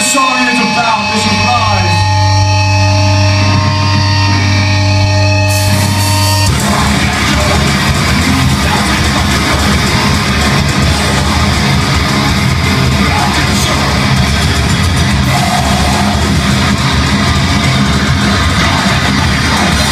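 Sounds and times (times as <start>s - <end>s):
distorted low chord: 0.0s - 19.9s
heavy band playing live: 0.0s - 19.9s.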